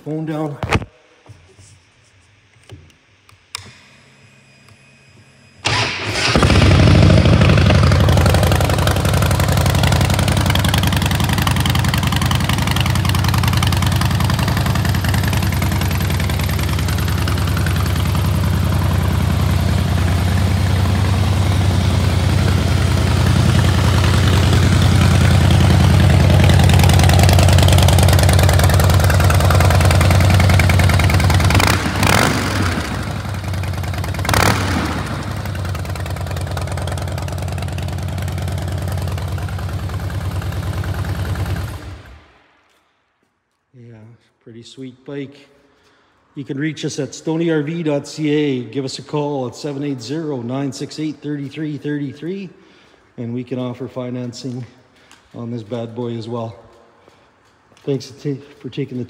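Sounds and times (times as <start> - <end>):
motorcycle engine starting and idling: 5.6 - 42.4.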